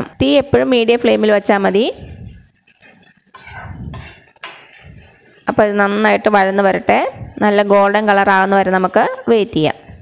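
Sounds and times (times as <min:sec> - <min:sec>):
metal spoon scraping a metal pan: 0:00.9 - 0:08.8.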